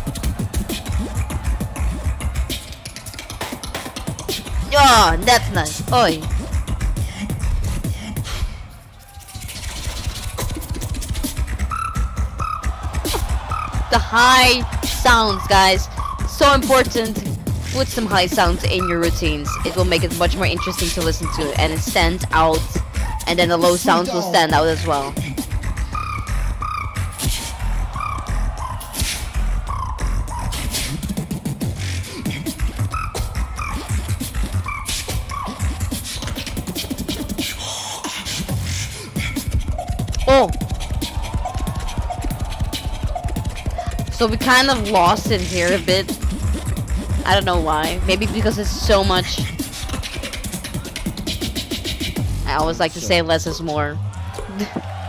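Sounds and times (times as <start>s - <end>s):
beatboxing: 0.0s - 55.0s
held high-pitched vocal tones: 4.7s - 6.3s, 17.8s - 25.2s, 40.1s - 40.6s.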